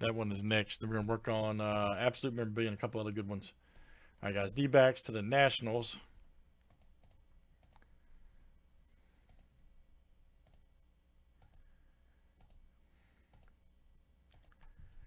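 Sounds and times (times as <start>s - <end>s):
low steady hum: 0.0s - 15.0s
computer mouse clicks: 6.6s - 7.9s, 9.2s - 9.5s, 10.4s - 10.7s, 11.4s - 11.7s, 12.4s - 12.6s, 13.3s - 13.6s, 14.3s - 14.8s.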